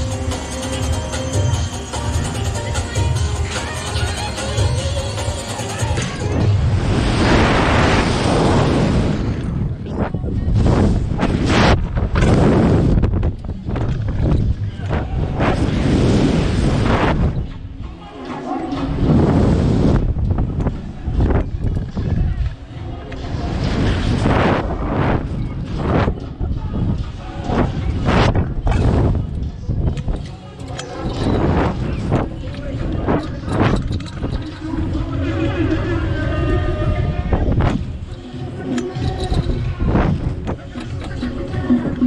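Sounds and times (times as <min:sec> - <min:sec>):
wind buffeting microphone: 0:06.2 - 0:17.8, 0:18.9 - 0:30.3, 0:31.0 - 0:42.0
riders' voices: 0:29.2 - 0:42.0.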